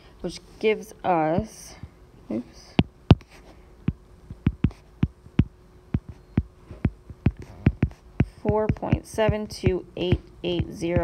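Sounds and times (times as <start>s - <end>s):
faint steady hum: 0.0s - 11.0s
light sharp taps: 3.9s - 10.7s.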